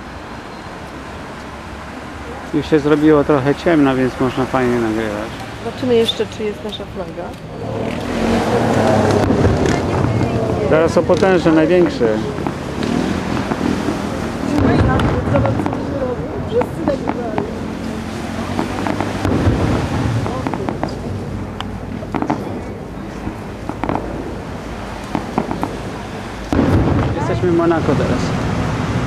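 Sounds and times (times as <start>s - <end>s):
firework shells bursting: 11.2s - 15.9s, 18.4s - 27.3s.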